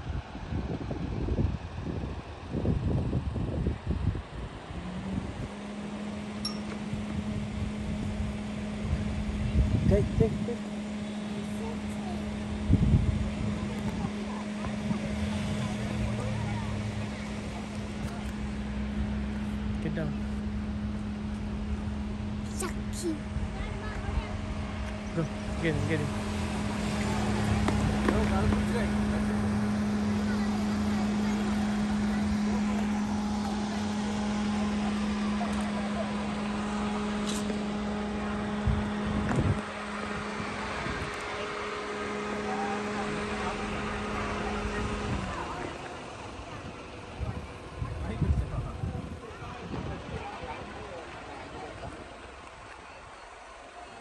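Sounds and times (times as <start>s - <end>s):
lower hum: 0.0s - 51.4s
steady low hum: 0.0s - 53.6s
outdoor background noise: 0.0s - 54.0s.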